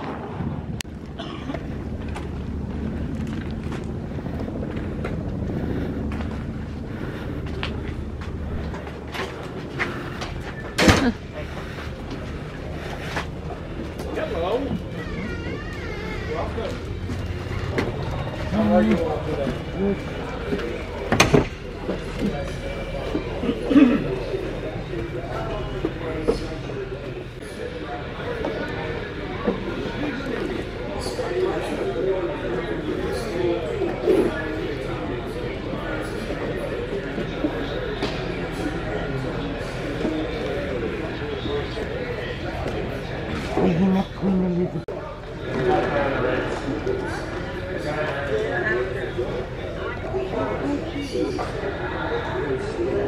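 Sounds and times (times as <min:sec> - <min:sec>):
wind rumble on microphone: 0:00.0 - 0:09.6
indistinct voices: 0:00.0 - 0:53.0.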